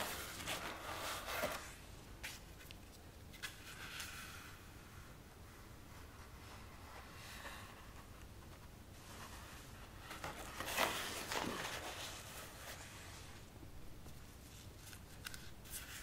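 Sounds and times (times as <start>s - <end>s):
paper sheet rustling: 0.0s - 2.6s, 9.0s - 13.4s.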